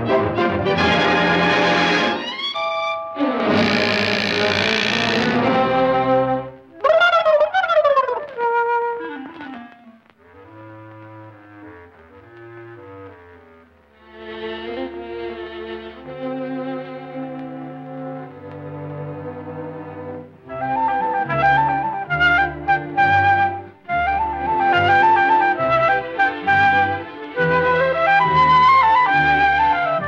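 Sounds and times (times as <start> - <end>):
orchestral cartoon music with brass: 0.0 - 9.0, 10.3 - 30.0.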